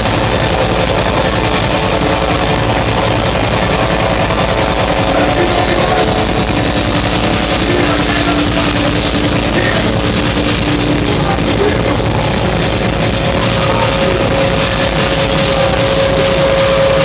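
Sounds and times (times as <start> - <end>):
live heavy rock music: 0.0 - 17.0.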